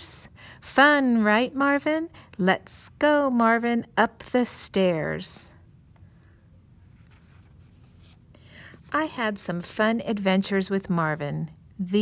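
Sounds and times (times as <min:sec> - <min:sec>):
paper page rustling: 0:06.8 - 0:08.3.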